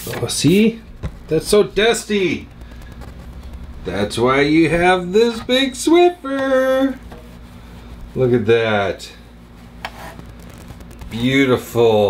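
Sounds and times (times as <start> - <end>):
steady low hum: 0.0 - 12.0
duster brushing plastic: 4.6 - 11.2.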